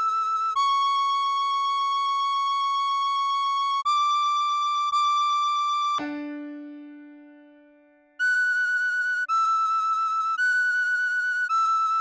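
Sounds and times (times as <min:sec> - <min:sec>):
tin whistle high notes: 0:08.2 - 0:12.0.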